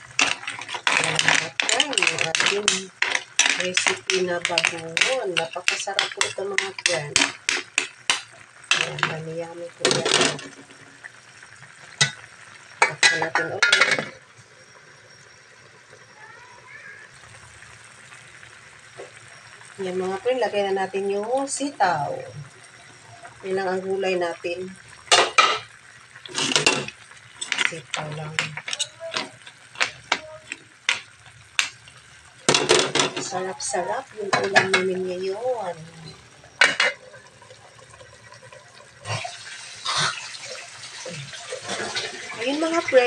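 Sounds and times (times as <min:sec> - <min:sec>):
utensils clattering: 0:00.0 - 0:09.2, 0:09.8 - 0:10.7, 0:12.8 - 0:14.2, 0:25.1 - 0:25.7, 0:26.3 - 0:31.8, 0:32.5 - 0:35.0, 0:36.0 - 0:37.1, 0:41.3 - 0:43.0
stew boiling hiss: 0:00.0 - 0:43.0
metal pot lid clinking: 0:00.1 - 0:09.2, 0:12.0 - 0:14.2, 0:26.3 - 0:31.8, 0:36.6 - 0:37.0.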